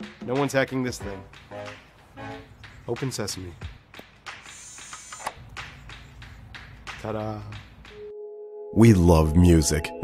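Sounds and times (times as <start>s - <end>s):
smart lock motor clicking: 4.5s - 5.4s.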